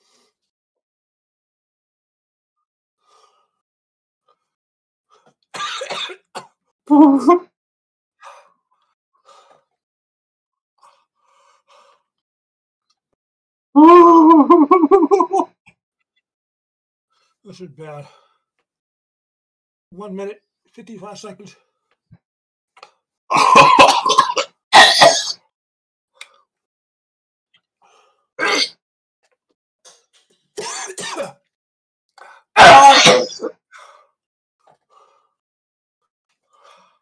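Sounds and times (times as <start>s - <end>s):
man coughing: 5.6s - 6.5s, 23.3s - 25.4s, 30.6s - 31.4s.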